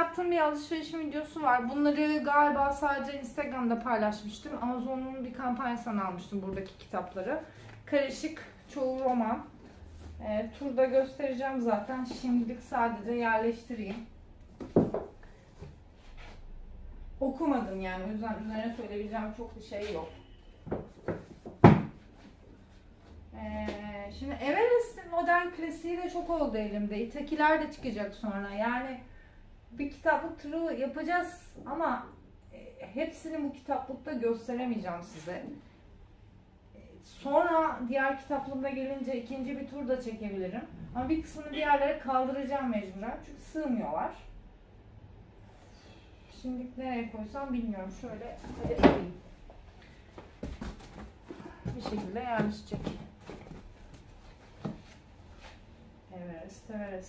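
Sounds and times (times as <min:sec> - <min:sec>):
books thudding onto shelf: 0:14.6 - 0:15.1, 0:20.7 - 0:22.0, 0:50.4 - 0:53.7.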